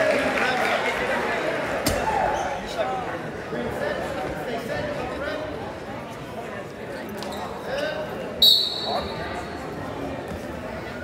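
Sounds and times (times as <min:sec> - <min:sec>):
referee's whistle blast: 0:08.4 - 0:09.2.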